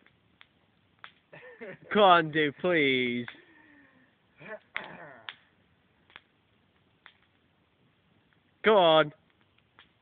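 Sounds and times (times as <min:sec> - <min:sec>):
faint clicks: 0:06.0 - 0:07.4.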